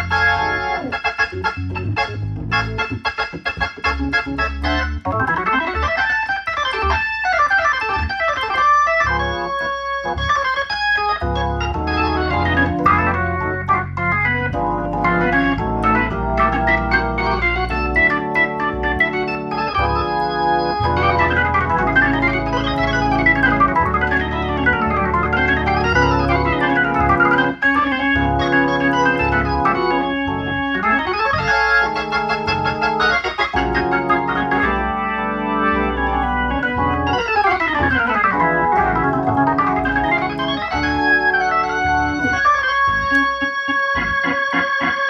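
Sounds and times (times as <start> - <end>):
organ playing gospel chords: 0.0 - 45.0.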